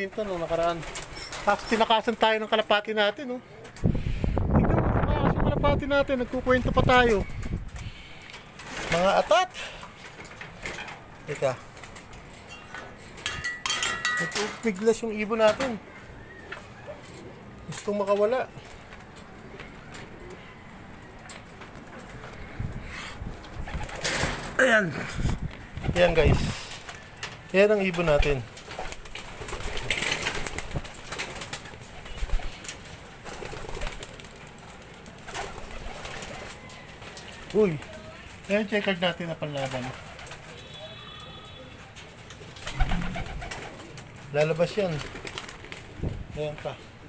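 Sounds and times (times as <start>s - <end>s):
pigeons cooing: 18.6s - 21.1s, 42.4s - 44.2s.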